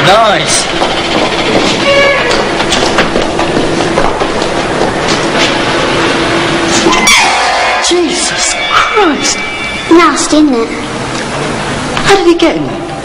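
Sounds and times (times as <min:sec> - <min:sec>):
train clattering on track: 0:00.0 - 0:06.0.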